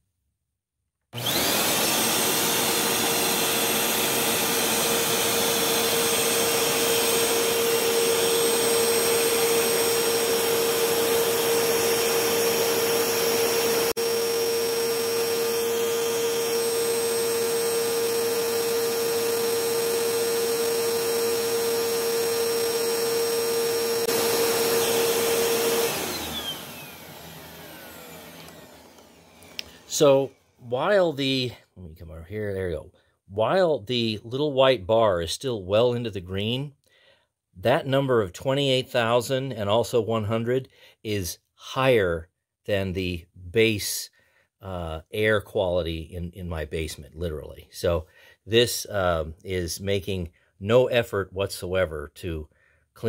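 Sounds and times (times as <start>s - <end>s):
vacuum cleaner running: 1.2s - 30.6s
vacuum motor winding down: 1.2s - 30.6s.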